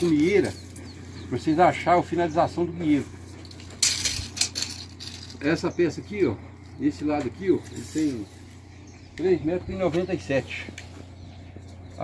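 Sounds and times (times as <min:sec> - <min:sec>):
tape measure blade rattling: 0:00.0 - 0:02.6, 0:03.4 - 0:05.4, 0:07.4 - 0:08.1.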